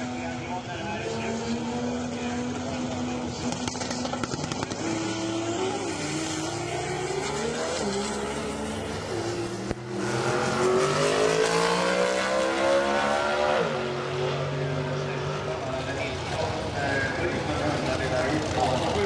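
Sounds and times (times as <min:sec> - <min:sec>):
race car engines at full throttle: 0:00.0 - 0:19.0.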